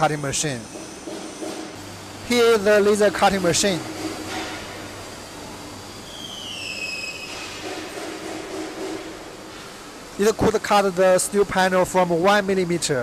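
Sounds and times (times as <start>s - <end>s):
laser cutter hum and hiss: 0.0s - 13.0s
falling squealing tone: 6.0s - 7.6s.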